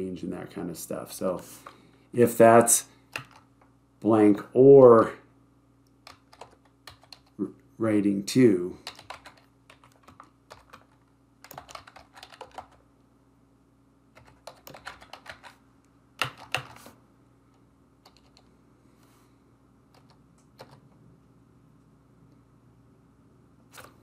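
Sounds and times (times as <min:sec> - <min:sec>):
computer keyboard typing: 0:03.1 - 0:03.5, 0:06.0 - 0:07.4, 0:08.8 - 0:12.8, 0:14.2 - 0:15.6, 0:16.2 - 0:17.0, 0:18.0 - 0:18.5, 0:19.9 - 0:20.9.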